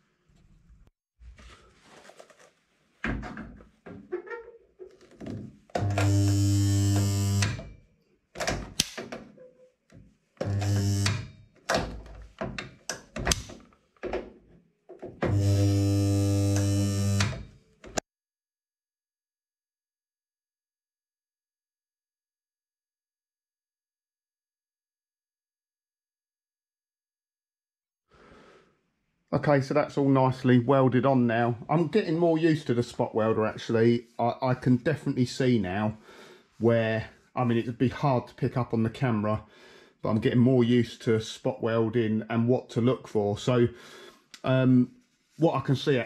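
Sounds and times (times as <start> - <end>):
spot welder buzzing: 5.8 - 7.6, 10.4 - 11.3, 15.3 - 17.5.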